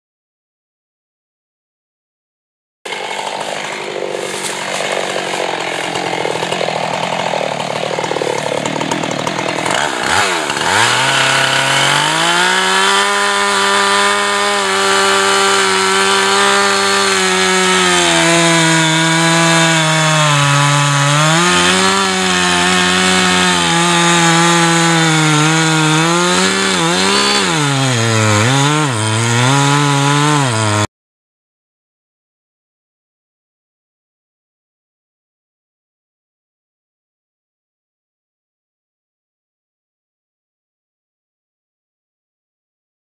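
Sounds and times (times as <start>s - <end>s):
chainsaw cutting wood: 2.9s - 30.9s.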